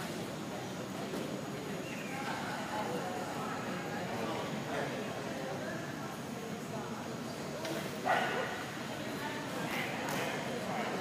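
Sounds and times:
murmur of voices: 0:00.0 - 0:11.0
dog barking in a hall: 0:08.0 - 0:08.7.

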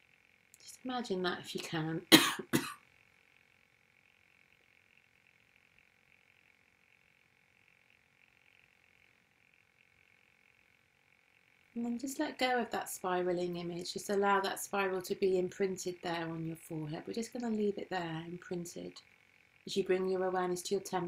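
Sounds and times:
faint steady hiss: 0:00.0 - 0:21.0
woman coughing: 0:02.1 - 0:02.8
person speaking: 0:11.8 - 0:19.0.

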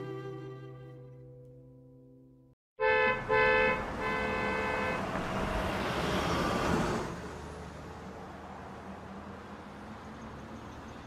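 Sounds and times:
bowed strings: 0:00.0 - 0:02.4
car horn honking: 0:02.8 - 0:05.1
traffic noise: 0:02.8 - 0:11.0.

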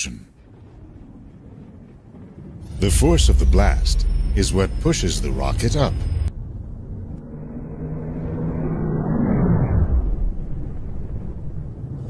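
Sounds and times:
rocket engine rumbling: 0:00.3 - 0:12.0.

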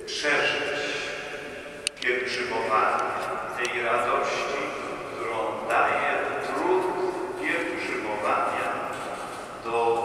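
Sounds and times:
man talking through loudspeakers: 0:00.0 - 0:10.0.

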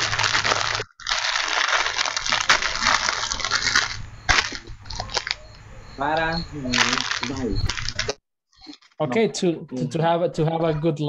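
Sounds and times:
crackling rustling noise: 0:00.0 - 0:05.6, 0:06.7 - 0:09.0.

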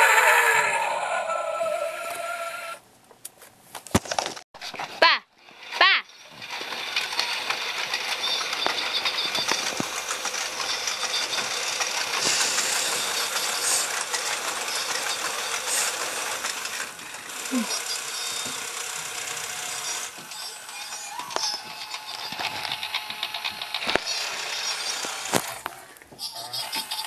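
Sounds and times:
animated figure mechanical rattle: 0:05.5 - 0:25.8.

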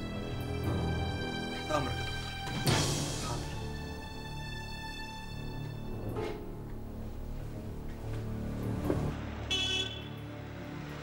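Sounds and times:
street traffic: 0:06.7 - 0:11.0
car horn toot: 0:09.5 - 0:10.2.

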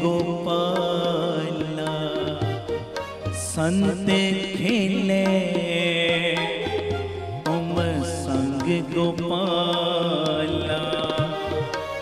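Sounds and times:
harmonium: 0:00.0 - 0:12.0
person singing devotional line: 0:00.0 - 0:12.0
tabla strokes: 0:00.0 - 0:12.0.

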